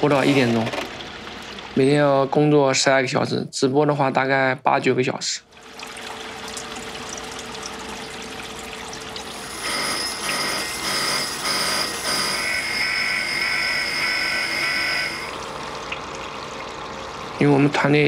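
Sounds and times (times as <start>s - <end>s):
grinder bit high-pitched whine: 9.3s - 15.7s
grinder running hum: 9.3s - 15.7s.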